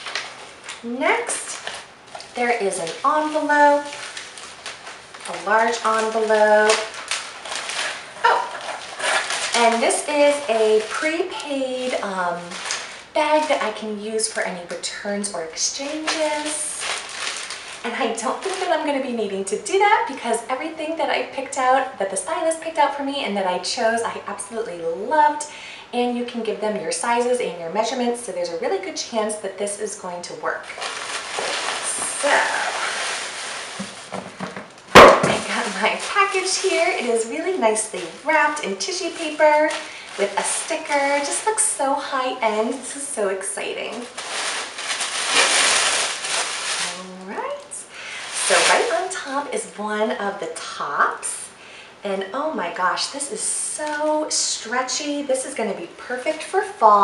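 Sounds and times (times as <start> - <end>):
plastic bag rustling and crinkling: 0.0 - 20.6, 30.3 - 50.1.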